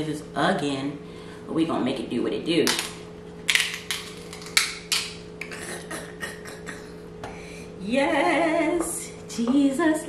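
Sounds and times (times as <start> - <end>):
crab shell cracking: 3.5 - 5.2.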